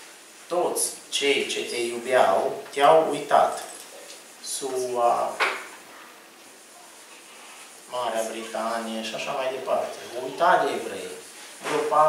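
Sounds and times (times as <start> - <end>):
man speaking into microphone: 0.5 - 3.7, 4.4 - 5.4, 7.9 - 12.0.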